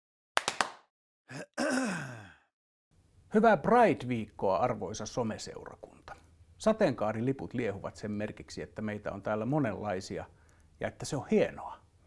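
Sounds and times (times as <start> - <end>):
man's wordless vocal sounds: 1.3 - 2.4.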